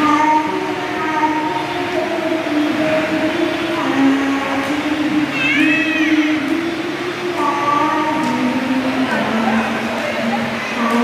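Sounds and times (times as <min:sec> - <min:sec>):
girl singing through speaker: 0:00.0 - 0:11.0.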